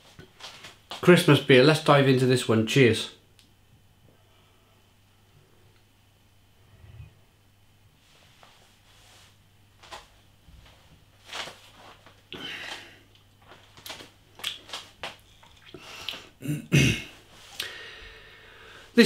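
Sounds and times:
breathing: 4.1s - 5.8s, 12.4s - 13.1s, 17.5s - 19.0s
lip-smacking: 13.1s - 16.3s
man sipping and swallowing: 15.3s - 16.6s
man clearing throat: 16.4s - 17.2s.

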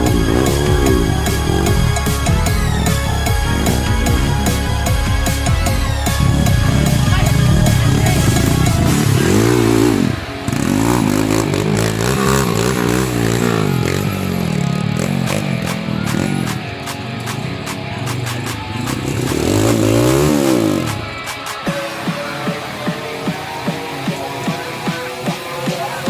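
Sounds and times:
background music: 0.0s - 26.0s
dirt bike engine revving: 0.0s - 26.0s.

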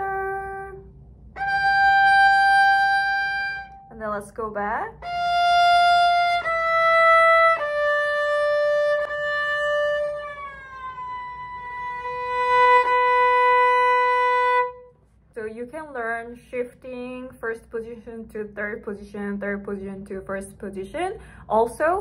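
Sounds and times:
violin bowed notes: 0.0s - 4.2s, 4.9s - 15.0s.

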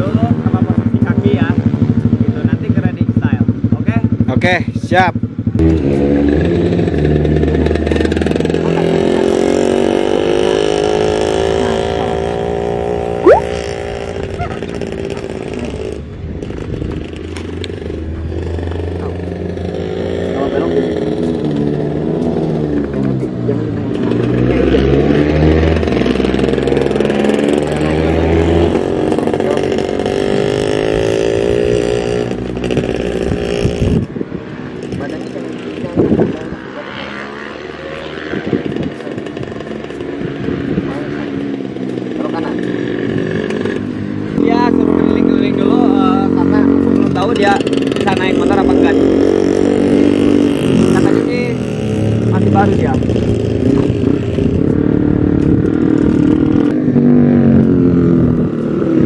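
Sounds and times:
motorcycle engine revving: 5.3s - 59.0s.

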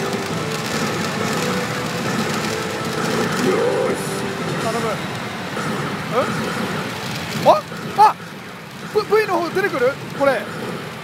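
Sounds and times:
machines' electronic sound effects: 0.0s - 11.0s.

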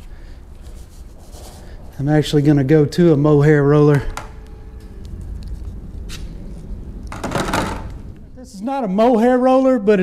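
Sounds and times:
steady low rumble: 0.0s - 10.0s
paint roller scraping rustle: 0.5s - 2.7s
man speaking: 2.0s - 4.2s, 8.3s - 10.0s.

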